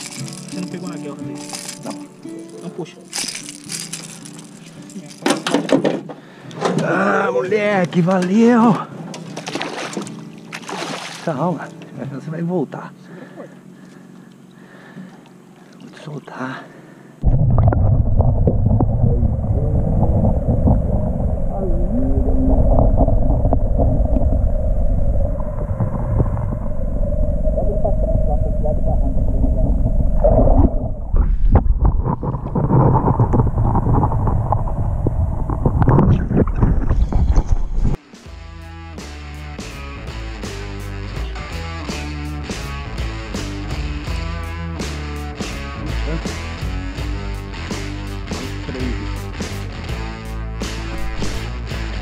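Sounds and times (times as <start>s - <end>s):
water surging: 9.3s - 11.4s
steady hum: 11.7s - 36.9s
muffled underwater rumble: 17.2s - 38.0s, 50.9s - 51.5s
music with a steady beat: 38.0s - 52.0s.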